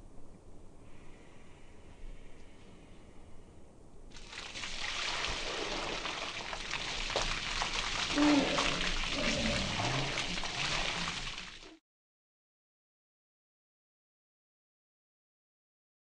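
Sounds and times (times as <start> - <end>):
water splashing onto clothes: 4.1 - 11.8.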